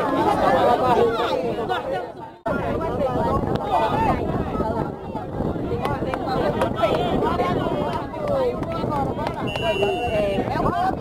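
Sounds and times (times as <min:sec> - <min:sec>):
referee's whistle blast: 0:09.5 - 0:10.4.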